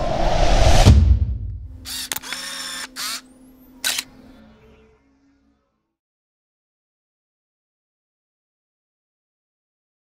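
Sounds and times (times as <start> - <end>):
deep hit: 0.4 - 1.8
camera shutter clicks: 1.9 - 4.1
film-winding whirr: 1.9 - 4.1.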